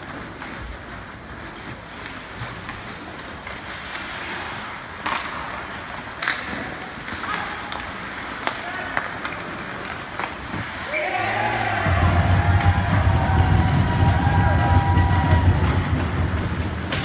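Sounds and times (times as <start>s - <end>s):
hockey sticks and puck clacking: 0.0s - 17.0s.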